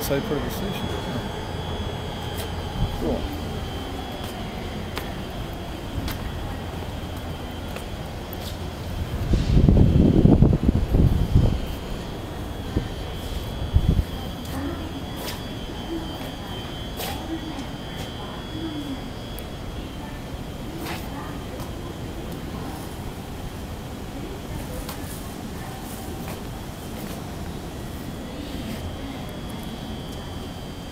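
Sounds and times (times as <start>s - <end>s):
faint distant voices: 0.0s - 30.9s
steady background hum: 0.0s - 30.9s.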